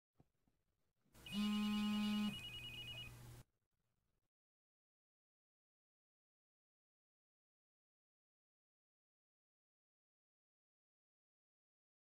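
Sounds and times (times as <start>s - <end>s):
phone vibrating buzz: 1.2s - 3.2s
high electronic ringtone: 1.3s - 3.2s.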